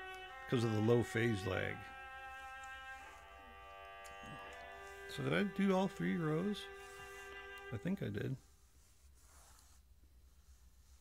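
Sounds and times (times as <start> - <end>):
sustained string-like chords: 0.0 - 8.2.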